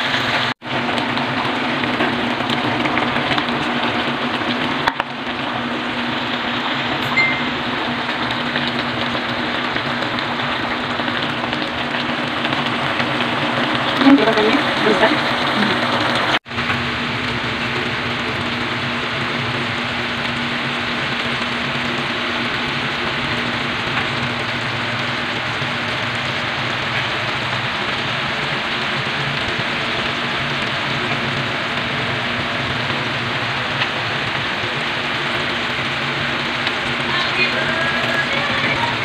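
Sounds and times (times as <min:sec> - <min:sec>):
food sizzling in a pan: 0:00.0 - 0:39.0.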